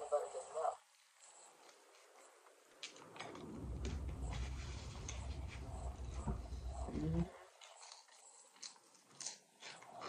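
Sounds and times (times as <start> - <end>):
chewing food: 7.4 - 10.0.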